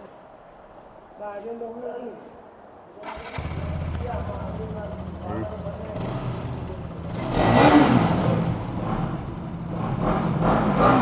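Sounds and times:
motorcycle engine starting and idling: 3.0s - 11.0s.

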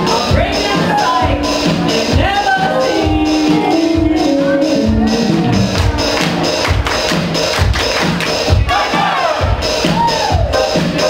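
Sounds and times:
live band music: 0.0s - 11.0s
voice sliding in pitch: 1.1s - 6.2s.

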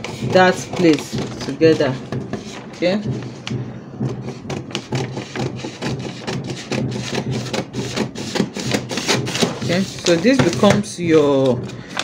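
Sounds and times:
scissors snipping paper: 0.0s - 3.4s, 4.2s - 10.8s
paper rustling: 0.0s - 3.6s, 4.2s - 12.0s
low steady hum: 0.0s - 7.7s.

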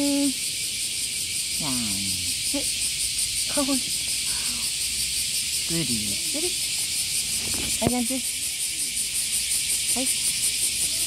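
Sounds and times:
insects shrilling: 0.0s - 11.0s.

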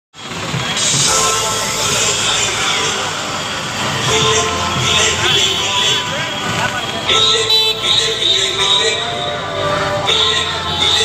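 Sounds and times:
dj music with heavy bass: 0.3s - 11.0s.

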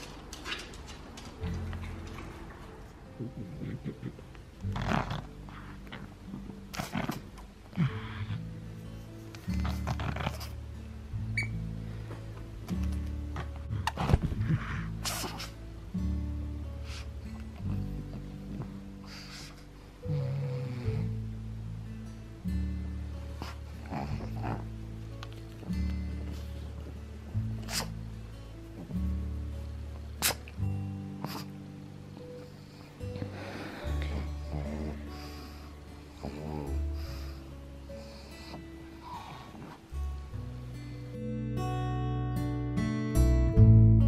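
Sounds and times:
background music low notes: 0.0s - 44.0s
dog growling: 3.0s - 8.6s, 9.5s - 10.6s, 13.4s - 15.6s, 19.0s - 21.2s, 23.4s - 24.8s, 32.6s - 39.8s.

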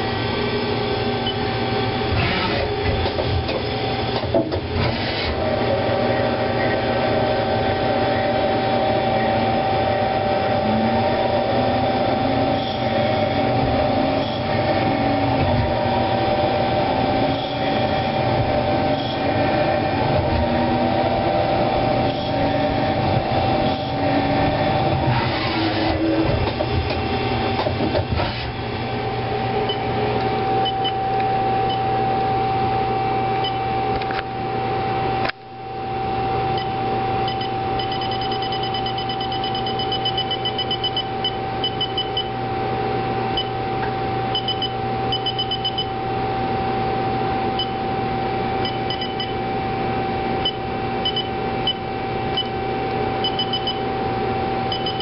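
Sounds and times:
lathe machine hum: 0.0s - 37.9s, 45.9s - 54.8s
constant high whine: 0.0s - 55.0s.

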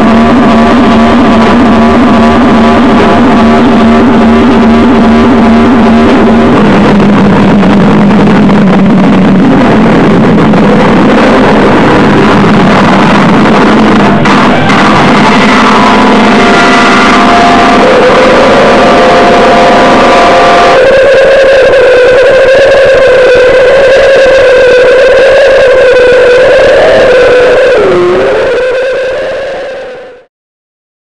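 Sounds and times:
held droning tone: 0.0s - 30.0s
loud distorted noise music: 0.0s - 30.3s.

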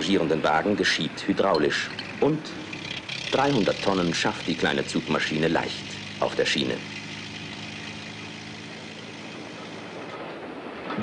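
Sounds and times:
freight wagons rolling on rails: 0.0s - 11.0s
low engine hum: 0.0s - 11.0s.

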